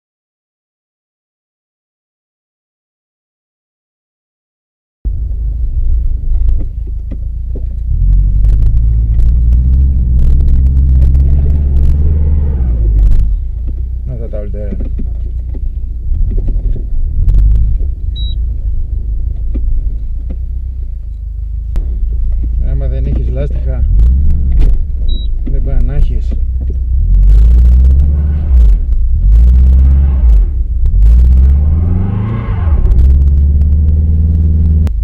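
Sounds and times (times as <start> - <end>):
car engine rumble from inside cabin: 5.1 - 35.0
sharp clicks and knocks: 6.3 - 12.2, 12.9 - 31.5.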